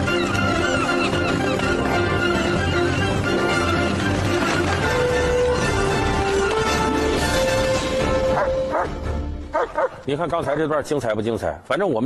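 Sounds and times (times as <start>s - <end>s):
huskies yipping: 0.0s - 3.5s
film score music: 0.0s - 11.8s.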